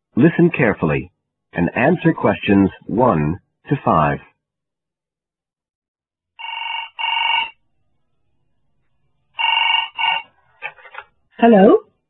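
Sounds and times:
telephone double ring: 6.4 - 7.6, 9.4 - 10.3.

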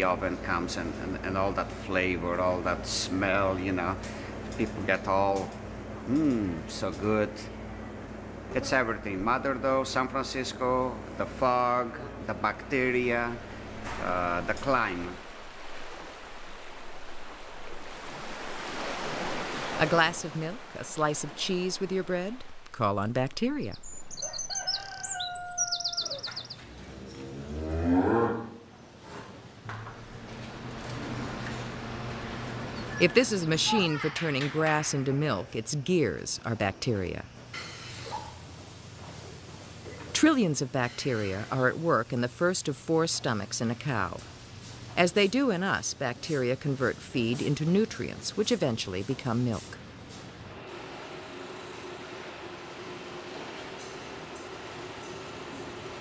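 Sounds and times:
steady mechanical noise: 0.0 - 17.9, 28.6 - 56.0
small birds chirping: 23.3 - 27.2
cow mooing: 26.8 - 28.7.

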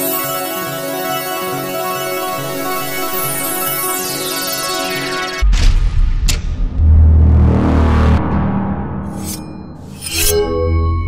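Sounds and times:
deep bass rumble: 5.4 - 10.0
sharp swoosh: 5.4 - 10.5.

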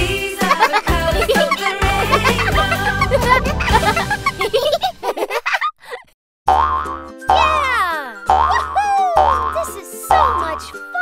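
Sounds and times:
bouncy children's music: 0.0 - 4.9, 6.8 - 11.0
cartoon giggling: 0.4 - 6.1
cartoon boing effects: 6.5 - 7.6, 8.3 - 9.6.

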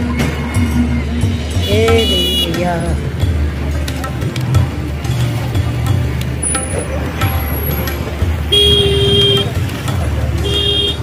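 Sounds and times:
road traffic noise: 0.0 - 11.0
vehicle horn honking: 1.6 - 2.6, 8.5 - 9.6, 10.4 - 11.0.

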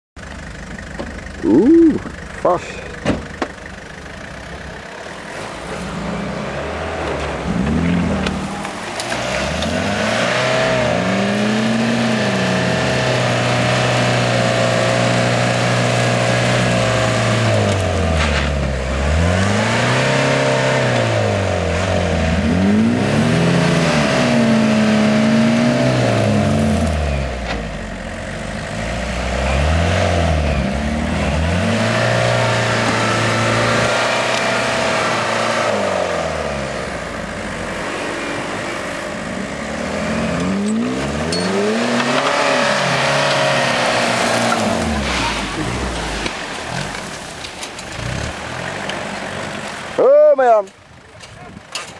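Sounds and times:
off-road engine revving: 0.3 - 50.8.

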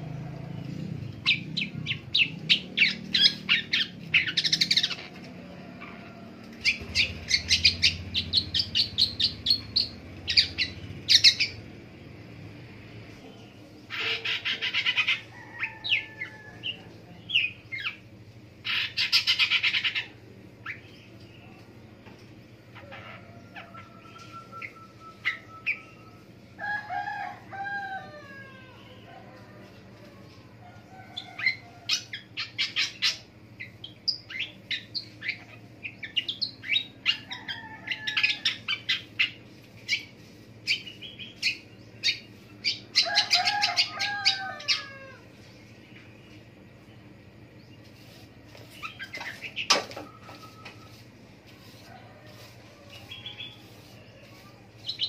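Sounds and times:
bird singing: 0.0 - 12.2, 13.2 - 26.9, 30.7 - 51.0
harsh rasping bird chatter: 0.7 - 5.2, 6.6 - 11.7, 13.9 - 21.2, 31.2 - 45.1, 47.4 - 55.0.

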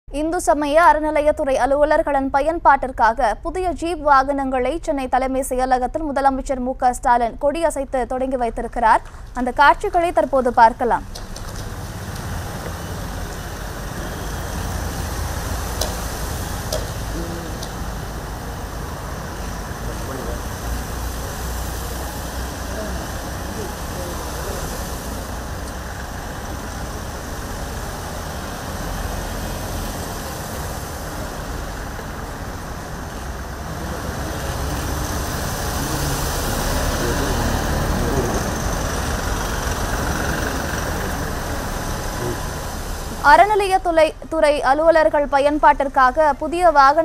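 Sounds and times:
diesel engine rumbling: 8.8 - 47.0.

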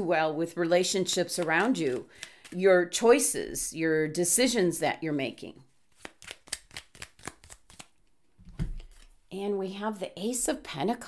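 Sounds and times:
cards being shuffled: 1.2 - 2.6, 5.9 - 9.2.

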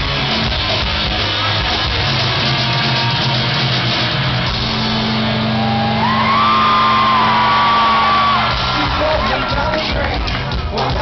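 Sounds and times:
live rock band: 0.0 - 11.0
crowd whoop: 5.3 - 10.1.

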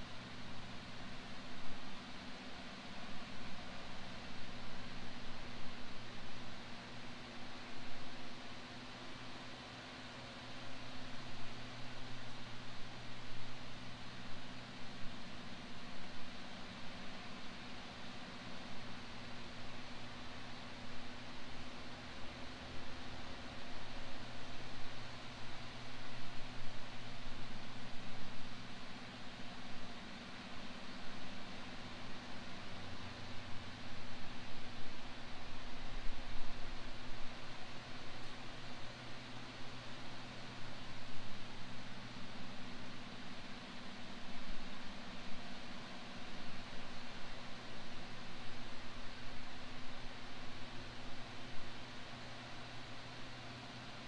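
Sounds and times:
low steady hum: 0.0 - 54.0
steady background hiss: 0.0 - 54.0.

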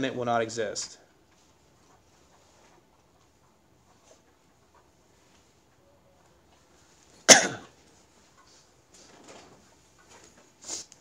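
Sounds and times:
man coughing: 7.3 - 7.8.

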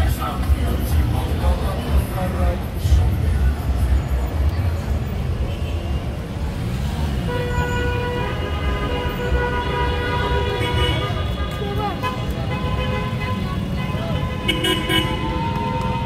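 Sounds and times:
voices: 0.0 - 6.3, 10.4 - 16.0
cars on wet street: 0.0 - 16.0
car horn: 7.2 - 16.0.

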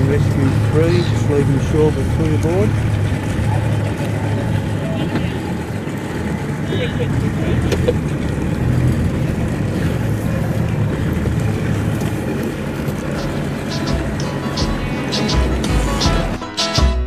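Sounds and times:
small boat motor running: 0.0 - 16.4
music: 13.1 - 17.0.

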